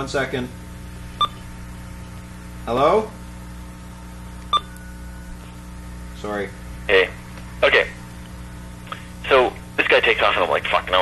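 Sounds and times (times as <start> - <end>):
steady electrical hum: 0.0 - 11.0
telephone keypad beep: 4.5 - 4.9.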